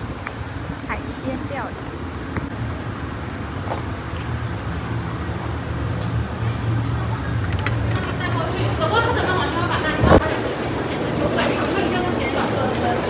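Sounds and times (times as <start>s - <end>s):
vehicle engine rumble: 0.0s - 13.0s.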